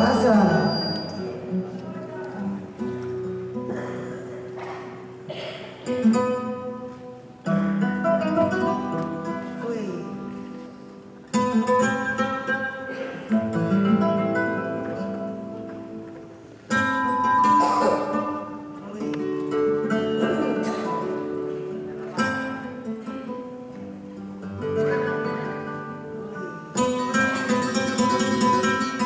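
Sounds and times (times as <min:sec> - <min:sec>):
flamenco guitars strumming chords: 0:00.0 - 0:29.0.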